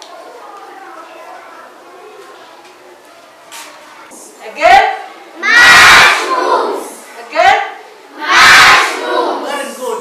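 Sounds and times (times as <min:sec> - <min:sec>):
children shouting in chorus: 0:05.4 - 0:07.0, 0:08.1 - 0:09.5.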